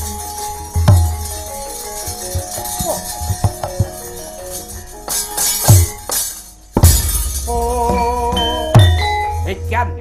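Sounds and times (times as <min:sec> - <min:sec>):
ringing bronze metallophones: 0:00.0 - 0:10.0
metal plates crashing: 0:01.0 - 0:07.9.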